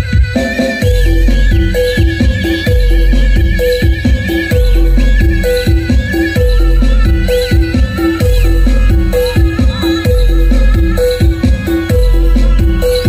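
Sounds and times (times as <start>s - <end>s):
music with heavy bass beat: 0.0s - 13.0s.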